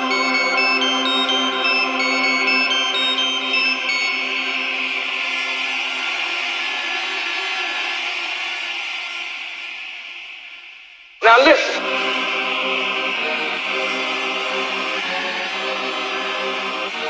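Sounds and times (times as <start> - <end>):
held synth chords: 0.0 - 5.6, 11.8 - 17.0.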